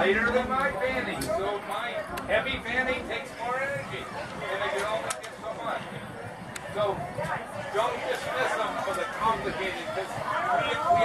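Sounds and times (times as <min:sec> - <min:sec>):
people talking in a group: 0:00.0 - 0:11.0.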